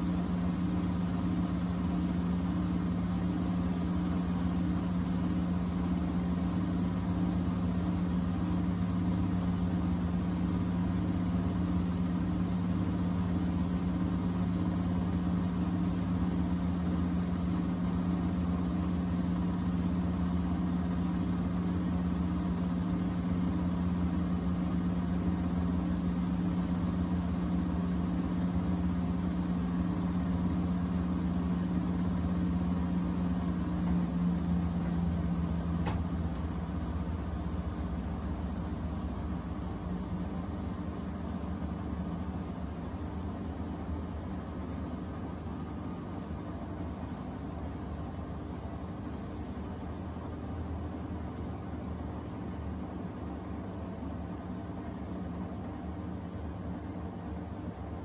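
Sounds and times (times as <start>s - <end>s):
washing machine humming: 0.0s - 58.0s.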